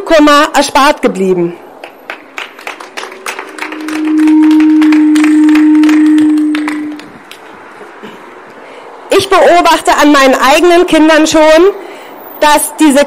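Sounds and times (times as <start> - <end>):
small crowd clapping: 1.8 - 7.6
loud steady low tone: 3.0 - 7.3.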